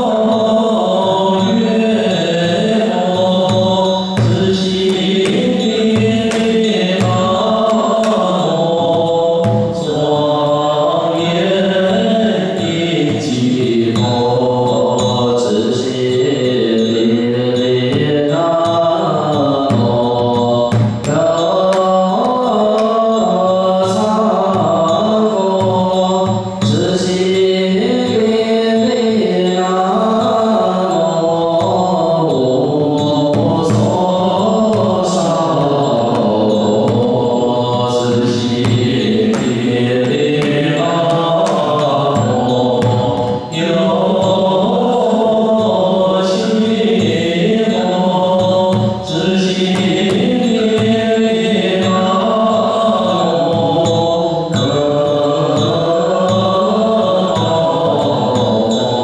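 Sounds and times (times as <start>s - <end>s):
group chanting: 0.0s - 59.0s
large drum beat: 3.4s - 10.1s.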